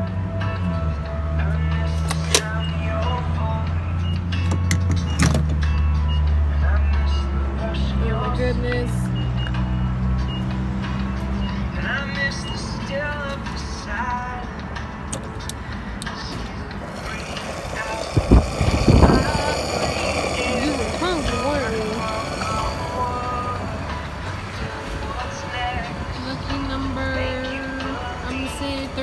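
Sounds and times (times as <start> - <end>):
vehicle engine idling: 1.6 - 29.0.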